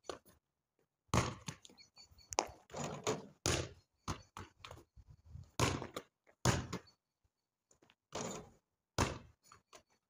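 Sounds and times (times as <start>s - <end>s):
basketball thudding: 1.1s - 1.6s, 3.4s - 3.8s, 5.6s - 6.8s.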